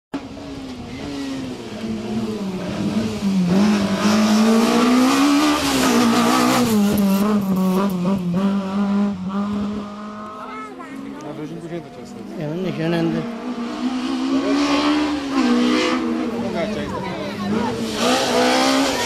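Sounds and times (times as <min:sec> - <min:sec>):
race car engine revving: 0:00.2 - 0:19.0.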